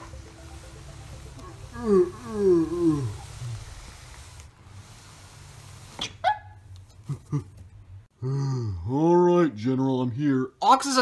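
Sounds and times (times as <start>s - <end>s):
person laughing deeply: 6.9s - 7.6s.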